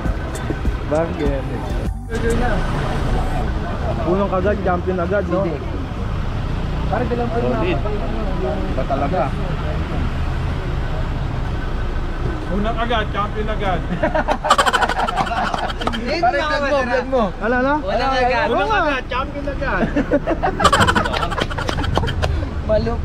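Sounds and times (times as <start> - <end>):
road traffic rumble: 0.0 - 23.0
people talking casually: 0.4 - 5.7, 14.4 - 23.0.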